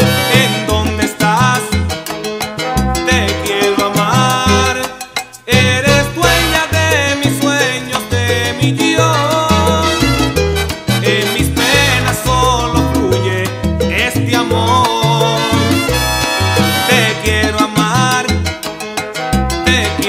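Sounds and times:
instrumental salsa music: 0:00.0 - 0:20.0.

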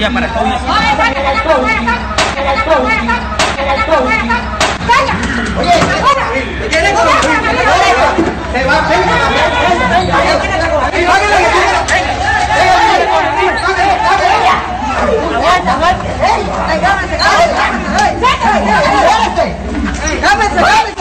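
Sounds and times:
people chattering excitedly: 0:00.0 - 0:21.0.

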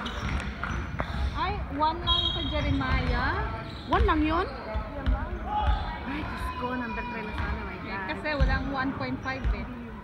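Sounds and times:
shoe squeaks: 0:00.0 - 0:01.2, 0:01.8 - 0:05.9
basketball bouncing thuds: 0:02.0 - 0:06.0, 0:07.3 - 0:09.8.

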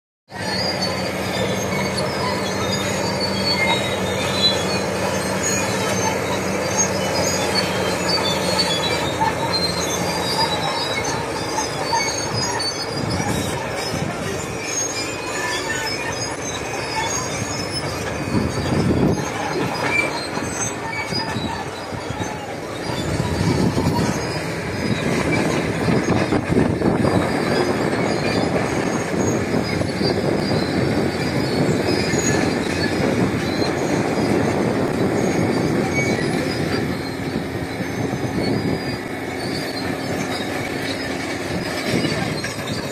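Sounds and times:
constant rushing noise: 0:00.3 - 0:42.9
diesel engine humming: 0:00.3 - 0:42.9.

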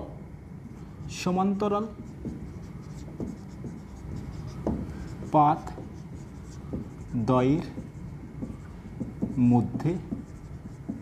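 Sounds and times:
marker scratching on whiteboard: 0:01.8 - 0:11.0.

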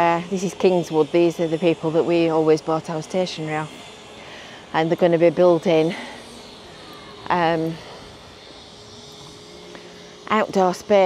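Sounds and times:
thin steady tone: 0:00.0 - 0:11.0.

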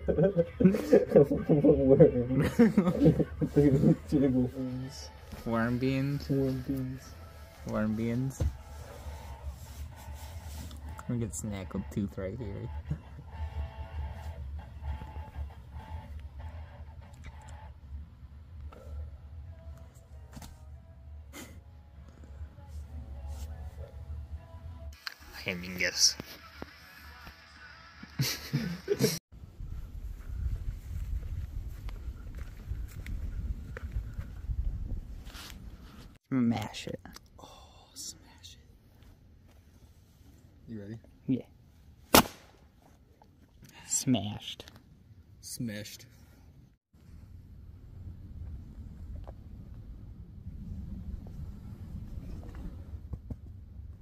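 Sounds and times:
people laughing: 0:00.0 - 0:04.5, 0:28.1 - 0:29.2
people talking: 0:00.0 - 0:07.1, 0:07.7 - 0:08.5, 0:11.0 - 0:13.0, 0:25.3 - 0:26.3
steady low rumble: 0:47.0 - 0:54.0.

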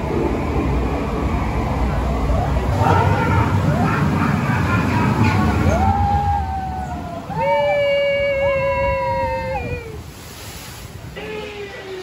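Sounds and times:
boat ride rumble and rushing: 0:00.0 - 0:12.0.

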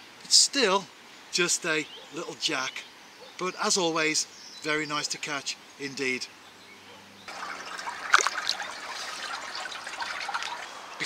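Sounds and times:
water splashing and trickling: 0:07.3 - 0:11.0.

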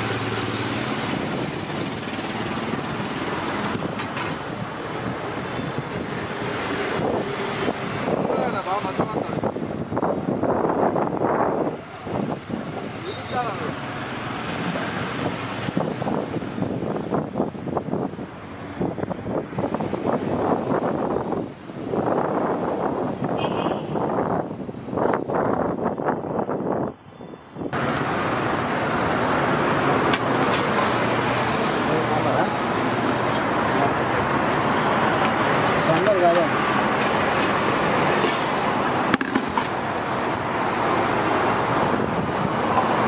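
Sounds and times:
street traffic: 0:00.0 - 0:43.0
people talking: 0:08.2 - 0:09.4, 0:13.0 - 0:13.8, 0:31.6 - 0:32.6, 0:35.8 - 0:36.6.

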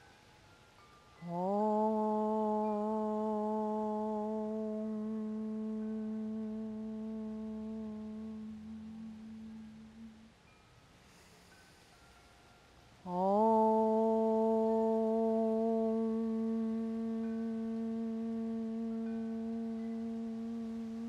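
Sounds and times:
woman chanting om: 0:01.2 - 0:12.0, 0:13.0 - 0:21.0.

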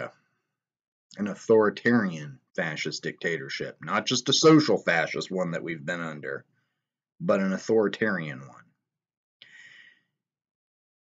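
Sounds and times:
person breathing: 0:06.5 - 0:06.9, 0:09.4 - 0:10.2.

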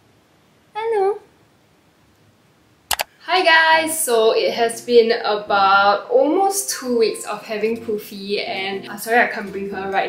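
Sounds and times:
woman speaking softly: 0:00.8 - 0:01.2.

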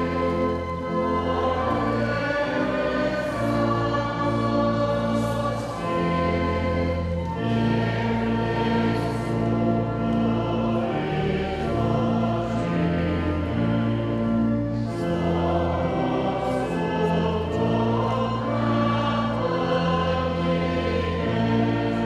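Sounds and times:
church organ: 0:00.0 - 0:22.0
congregation singing a hymn: 0:00.0 - 0:22.0.

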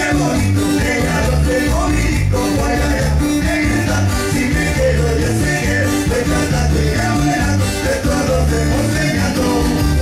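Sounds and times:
cumbia band with accordion: 0:00.0 - 0:10.0.

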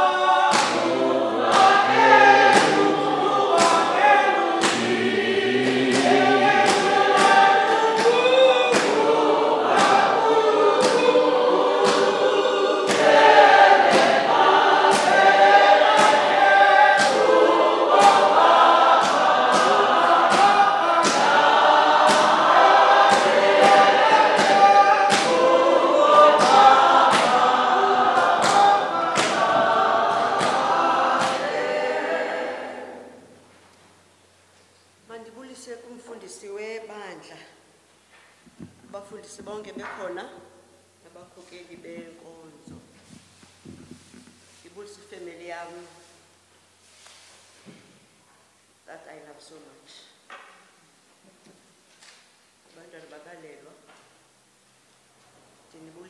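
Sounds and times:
sharp evenly spaced beats: 0:00.0 - 0:33.2
congregation singing: 0:00.0 - 0:34.1.

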